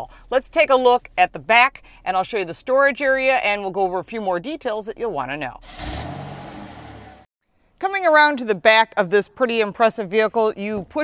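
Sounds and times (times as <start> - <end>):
low car hum: 5.6 - 7.3.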